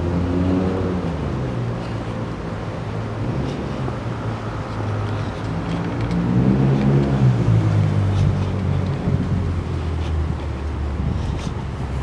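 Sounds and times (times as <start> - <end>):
city road traffic hum: 0.0 - 12.0
vehicle engine passing: 2.8 - 12.0.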